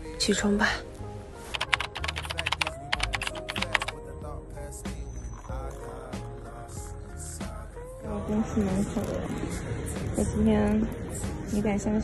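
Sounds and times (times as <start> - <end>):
background music: 0.0 - 12.0
rapid small sharp clicks: 1.6 - 4.0.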